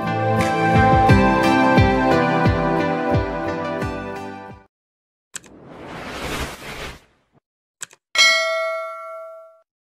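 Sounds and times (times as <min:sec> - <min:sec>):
bell-like ding: 0:08.2 - 0:09.7.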